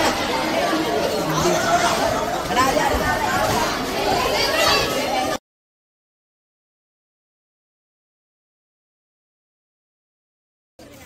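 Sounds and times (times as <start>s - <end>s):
boys chattering excitedly: 0.0s - 5.4s.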